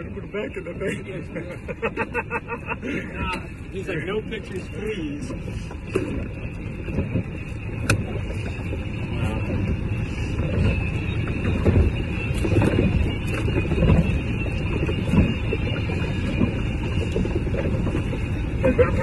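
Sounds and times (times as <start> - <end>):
wind buffeting microphone: 3.0 - 19.0.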